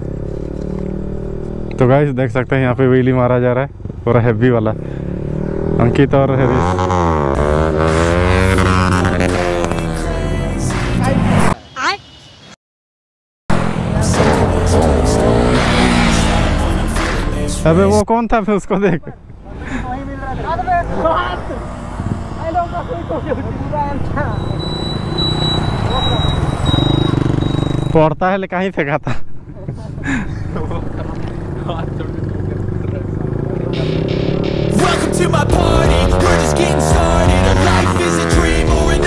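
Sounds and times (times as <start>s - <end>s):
motorcycles revving past: 4.7s - 11.6s, 13.6s - 18.0s, 20.4s - 28.0s, 30.4s - 39.0s
music: 7.6s - 11.2s, 13.6s - 18.0s, 33.7s - 39.0s
people's voices: 13.7s - 24.8s.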